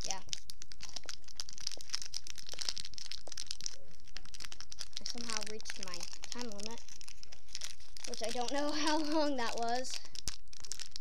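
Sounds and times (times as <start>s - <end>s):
foil packet crinkling: 0.0s - 11.0s.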